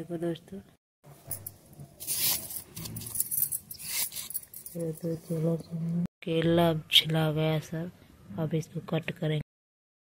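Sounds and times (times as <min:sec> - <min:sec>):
bangles clinking: 0:01.2 - 0:05.4.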